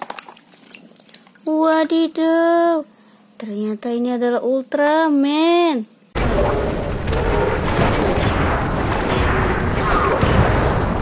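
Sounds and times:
dense continuous rumble: 6.2s - 11.0s
explosion booms and crashes: 6.2s - 11.0s.

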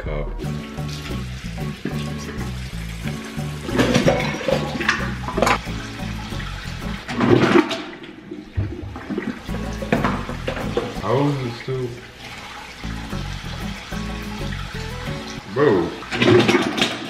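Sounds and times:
music with repeating bass line: 0.4s - 7.1s, 9.5s - 11.0s, 12.9s - 15.4s
water splashing in sink: 0.4s - 17.0s.

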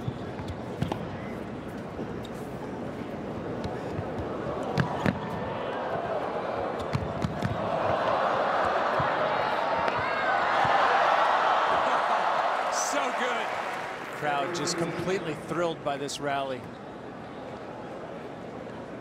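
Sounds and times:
arena crowd noise: 0.0s - 19.0s.

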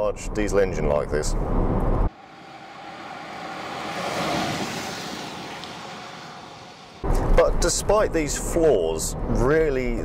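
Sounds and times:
tyre noise on road: 1.7s - 7.5s
car driving past: 1.8s - 7.4s.

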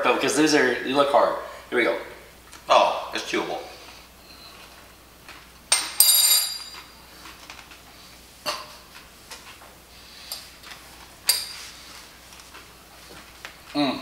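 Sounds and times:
metal spoon clinking: 6.0s - 6.8s.

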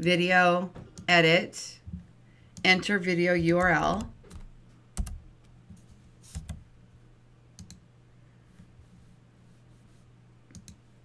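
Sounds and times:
faint low hum: 0.0s - 11.0s
computer keys and mouse clicks: 3.5s - 6.7s, 7.6s - 7.8s, 10.4s - 10.9s.

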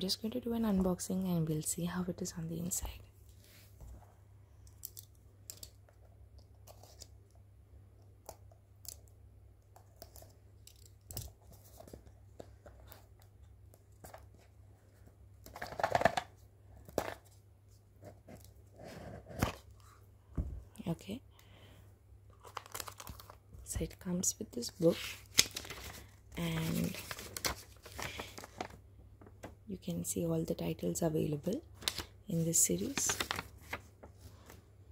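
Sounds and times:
cardboard rustling: 25.2s - 28.8s, 31.8s - 34.2s.

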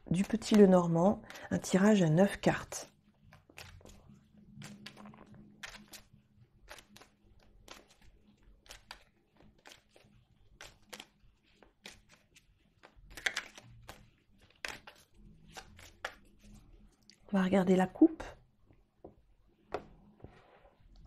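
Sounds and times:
cards being shuffled: 2.3s - 16.8s.

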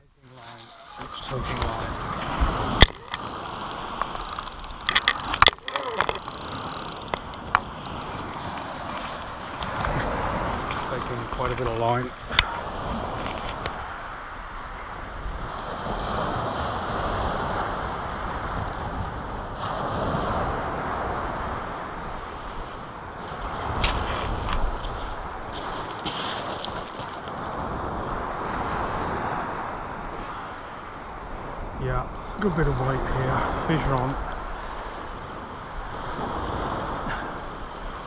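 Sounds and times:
surf on shingle beach: 0.0s - 38.0s
wind on microphone: 0.4s - 38.0s
sharp clicks: 2.6s - 8.8s.

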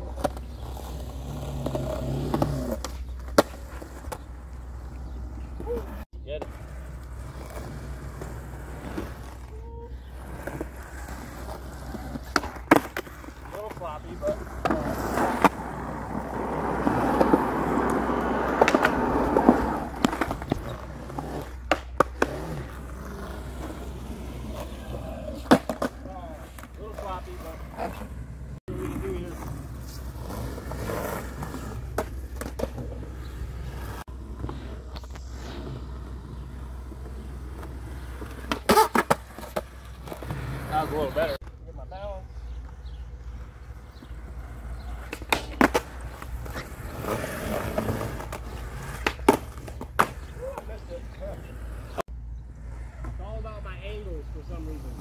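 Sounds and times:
skateboard wheels rolling on concrete: 0.0s - 55.0s
skateboard clacking on ground: 16.7s - 22.6s, 24.4s - 28.1s, 44.0s - 46.8s, 47.5s - 52.0s.

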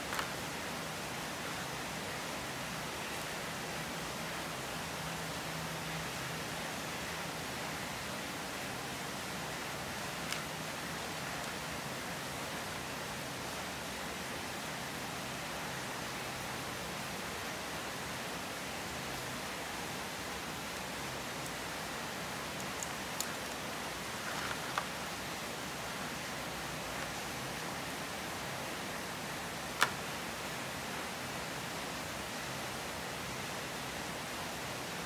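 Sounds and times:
steady hiss: 0.0s - 35.0s.

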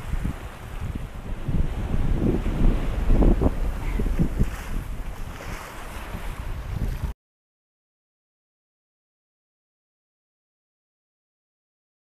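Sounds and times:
waves breaking: 0.0s - 7.2s
wind buffeting microphone: 0.0s - 7.2s.

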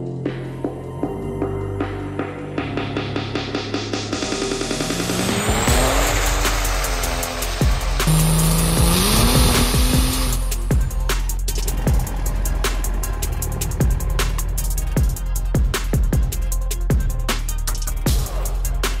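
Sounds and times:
electronic music with heavy beat: 0.0s - 19.0s
diesel engine revving: 4.2s - 16.6s.

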